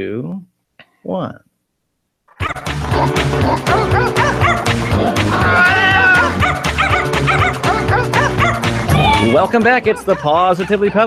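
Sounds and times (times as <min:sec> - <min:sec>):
jingle music with bass line: 0:02.5 - 0:10.8
dog barks and yips: 0:08.2 - 0:08.6.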